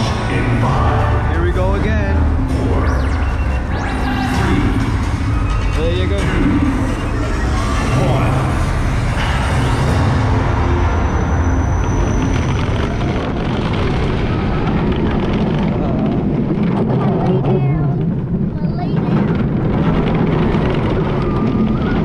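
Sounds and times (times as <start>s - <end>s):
roller coaster train rumbling on track: 0.0s - 22.0s
wind rushing over microphone: 12.2s - 22.0s.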